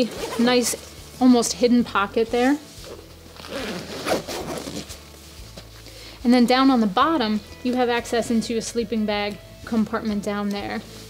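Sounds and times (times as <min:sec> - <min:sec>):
zipper being pulled shut: 0:00.0 - 0:00.9, 0:02.8 - 0:05.0
fabric handling: 0:00.0 - 0:08.0.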